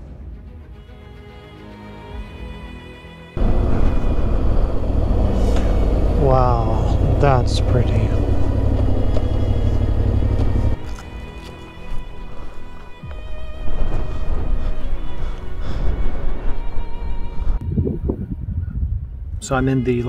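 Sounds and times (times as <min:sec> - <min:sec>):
wind rushing: 0:03.4 - 0:10.8, 0:13.2 - 0:19.5
motorcycle engine rumble: 0:03.4 - 0:11.0
soft background music: 0:09.1 - 0:18.5.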